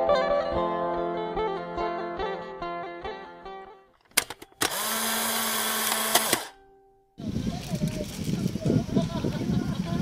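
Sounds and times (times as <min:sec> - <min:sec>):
plucked string music: 0:00.0 - 0:04.6
sharp clicks: 0:04.0 - 0:06.6.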